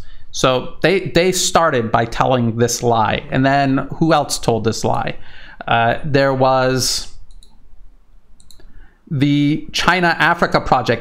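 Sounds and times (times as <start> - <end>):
computer mouse clicking: 7.3 - 7.6, 8.4 - 8.7.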